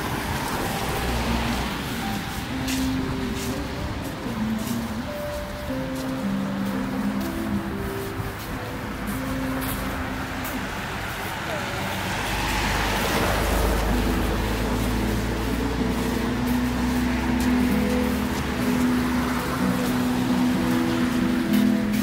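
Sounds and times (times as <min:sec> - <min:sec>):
car driving past on wet road: 0:00.0 - 0:04.1, 0:09.0 - 0:22.0
music with held notes: 0:00.0 - 0:22.0.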